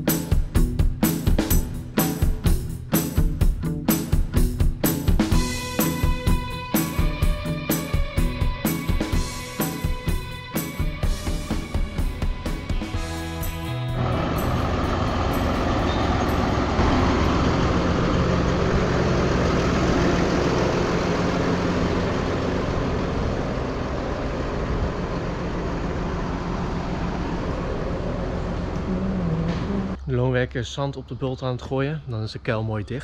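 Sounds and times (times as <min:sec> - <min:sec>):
background music: 0:00.0 - 0:18.2
tractor diesel engine running: 0:05.3 - 0:30.1.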